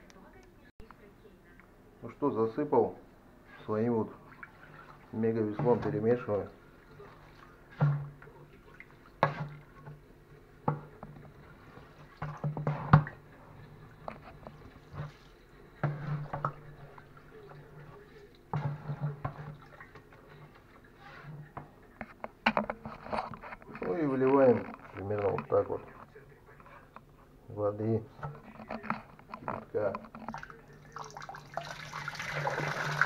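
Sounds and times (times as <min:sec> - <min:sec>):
water sloshing and splashing: 0:03.7 - 0:10.0, 0:10.7 - 0:21.6, 0:28.4 - 0:33.0.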